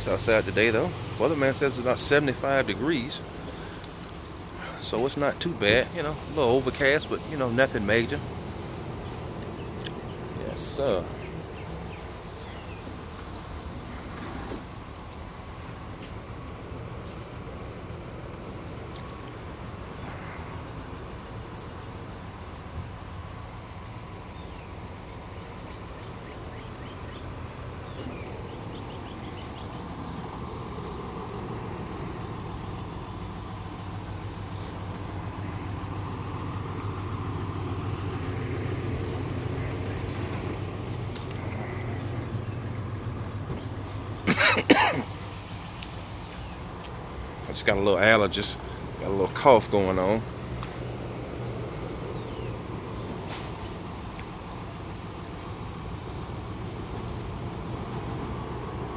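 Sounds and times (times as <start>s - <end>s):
traffic: 0.0s - 58.9s
vehicle engine hum: 0.0s - 58.9s.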